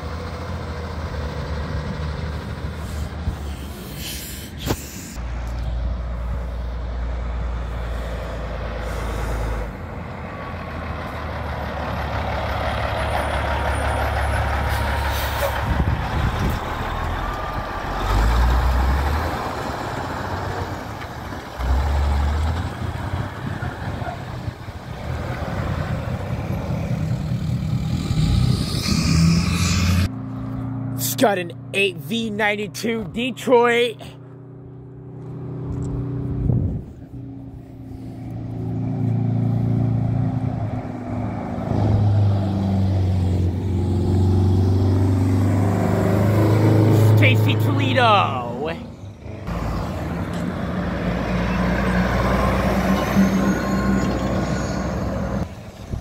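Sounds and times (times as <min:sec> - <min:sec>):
diesel trucks driving past: 0:00.0 - 0:56.0
air brakes hissing: 0:02.8 - 0:05.2, 0:14.6 - 0:15.6.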